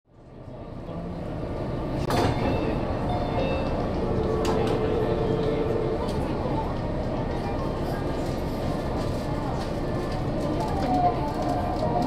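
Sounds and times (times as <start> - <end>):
train rumble and hum: 0.1 - 12.0.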